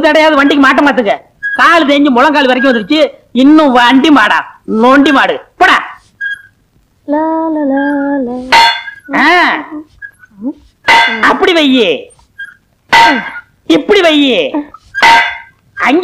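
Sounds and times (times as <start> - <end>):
pitched vocal cries: 7.1 - 10.4.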